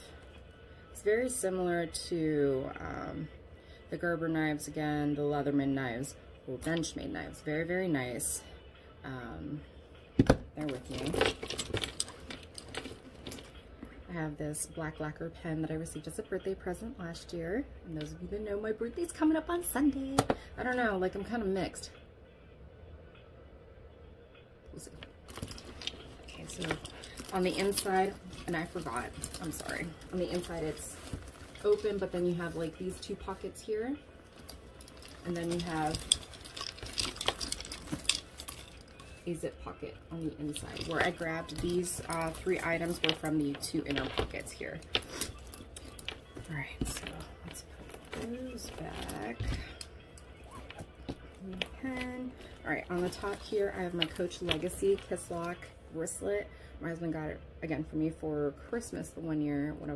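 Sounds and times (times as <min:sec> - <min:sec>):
metal bag hardware jangling: 0:10.6 - 0:13.6, 0:24.9 - 0:55.6
metallic clicks and jingles: 0:10.6 - 0:13.6, 0:24.8 - 0:55.6
rustling inside handbag: 0:10.6 - 0:13.7, 0:24.8 - 0:55.7.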